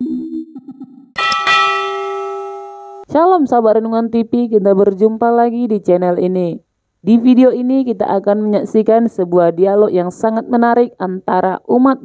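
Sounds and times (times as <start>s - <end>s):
bell chime ringing: 1.2s - 3.1s.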